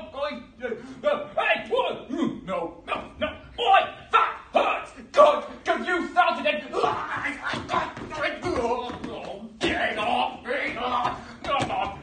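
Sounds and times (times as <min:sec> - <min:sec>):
man yelling and grunting: 0:00.0 - 0:12.0.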